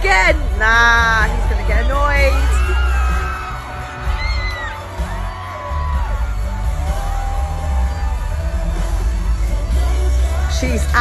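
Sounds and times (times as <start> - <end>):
live concert music: 0.0 - 11.0.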